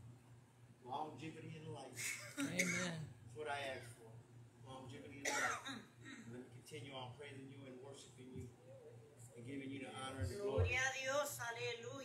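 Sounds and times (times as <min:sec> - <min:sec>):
man clearing his throat: 0:02.5 - 0:03.0, 0:05.3 - 0:06.4.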